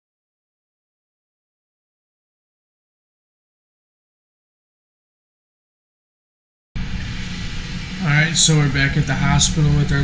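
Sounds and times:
faint hiss: 6.8 - 10.0
low room hum: 6.8 - 10.0.

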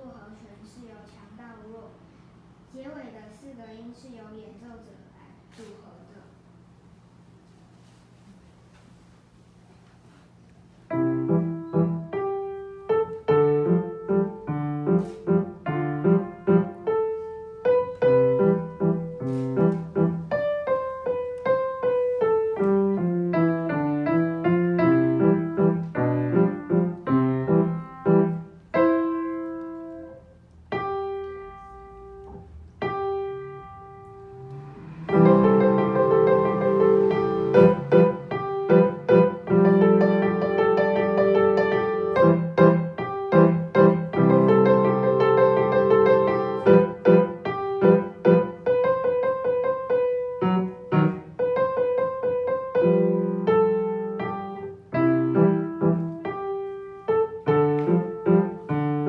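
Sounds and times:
grand piano piece: 10.6 - 59.0.

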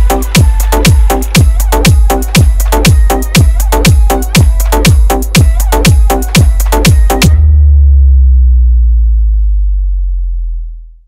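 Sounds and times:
deep electronic sub-bass note: 0.0 - 11.0.

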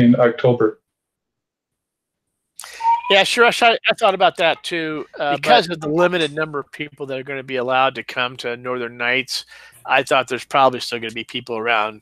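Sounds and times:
person speaking: 2.6 - 12.0.

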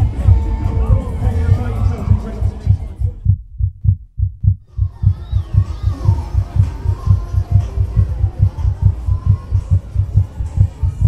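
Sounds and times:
music: 0.0 - 3.3, 4.8 - 11.0
low regular drum beats: 0.0 - 11.0
voices: 4.7 - 11.0.

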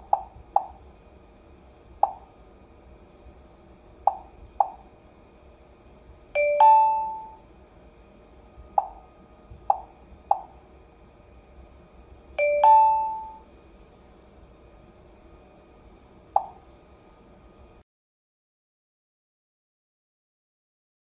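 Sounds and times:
two-note ding-dong chime: 6.4 - 7.4, 12.4 - 13.4
touchscreen key beeps: 12.4 - 13.4.

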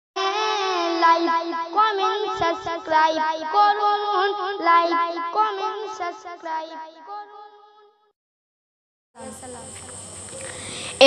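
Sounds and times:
steady hiss: 9.2 - 11.0.

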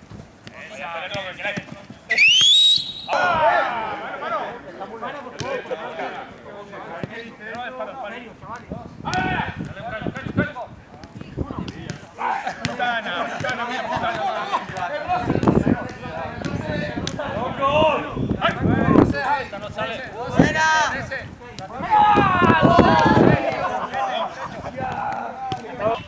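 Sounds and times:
men calling out: 2.1 - 4.7, 21.7 - 25.8
footballs being kicked: 8.5 - 17.2, 22.4 - 26.0.

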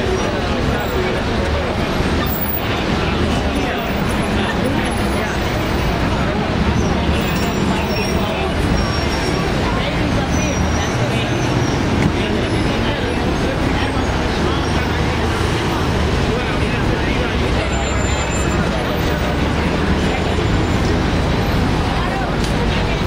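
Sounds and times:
idling engines humming: 0.0 - 23.0
indistinct chatter of people: 0.0 - 23.0
steady traffic: 0.0 - 23.0.

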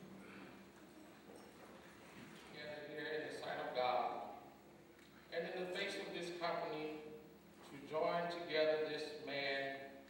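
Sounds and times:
man speaking: 2.6 - 4.5, 5.3 - 9.9.

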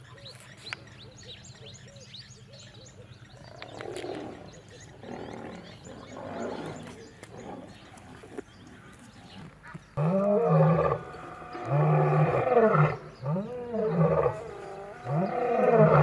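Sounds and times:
small birds chirping: 0.0 - 16.0
lions growling: 3.4 - 16.0.

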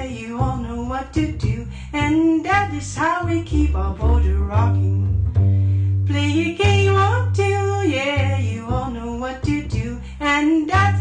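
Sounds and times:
woman singing: 0.0 - 5.1, 6.1 - 11.0
double bass plucked: 0.0 - 11.0.

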